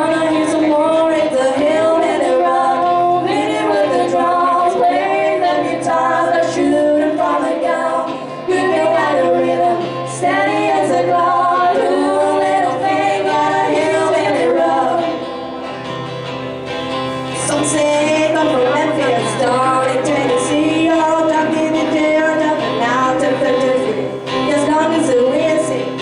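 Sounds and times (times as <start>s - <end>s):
two voices singing in harmony: 0.0s - 15.7s, 17.1s - 26.0s
acoustic guitars strumming: 0.0s - 26.0s.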